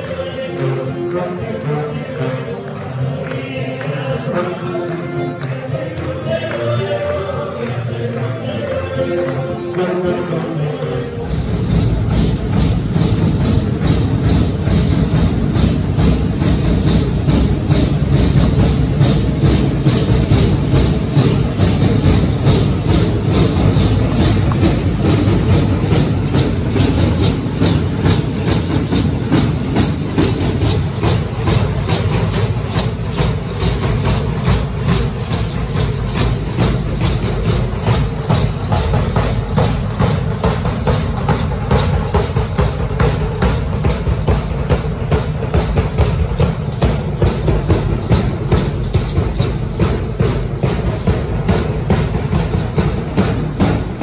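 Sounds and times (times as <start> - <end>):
fast drum beat: 6.0 - 54.0.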